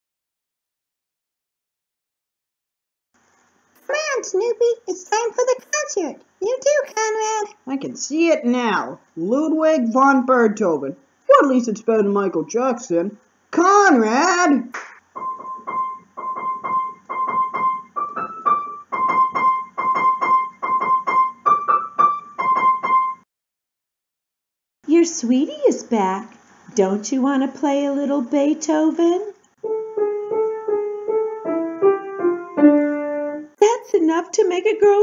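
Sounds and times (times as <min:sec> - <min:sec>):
piano melody: 0:15.1 - 0:23.3, 0:29.6 - 0:33.6.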